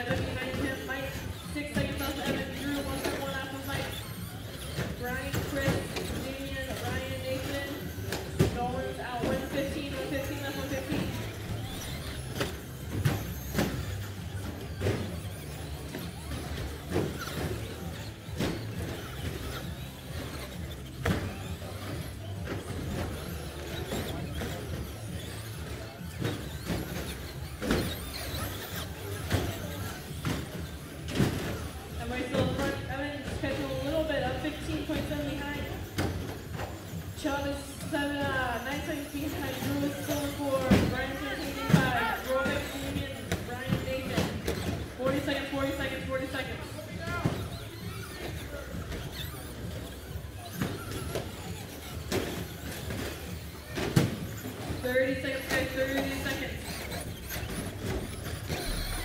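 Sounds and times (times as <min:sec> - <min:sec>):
voices: 0:00.0 - 0:59.0.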